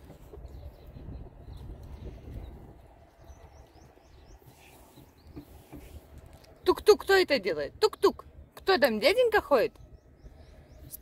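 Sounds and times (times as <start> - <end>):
wind on microphone: 0.0 - 6.6.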